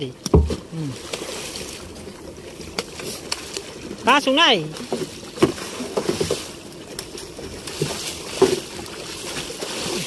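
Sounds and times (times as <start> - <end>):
sharp splashes or knocks: 0.2 - 1.8, 4.8 - 6.5.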